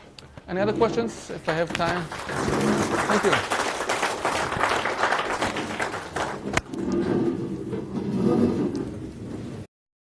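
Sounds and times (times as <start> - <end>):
audience applause: 1.4 - 6.7.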